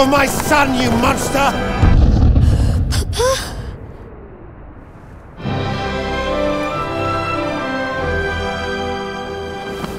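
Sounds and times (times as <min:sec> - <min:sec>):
deep boom: 0:01.7 - 0:05.8.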